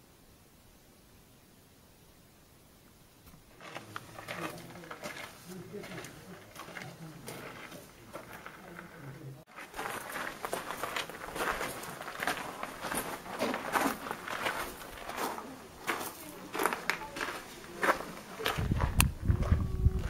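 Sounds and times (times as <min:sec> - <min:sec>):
footsteps crunching on gravel: 0:03.3 - 0:20.0.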